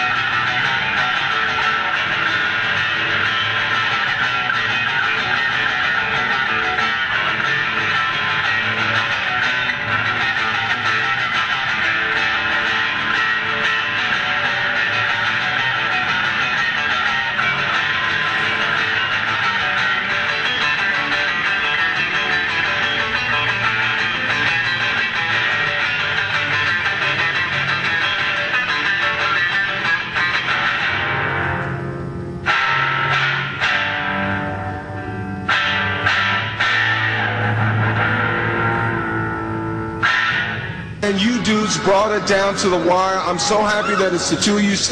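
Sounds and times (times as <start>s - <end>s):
rock band playing: 0.0s - 44.9s.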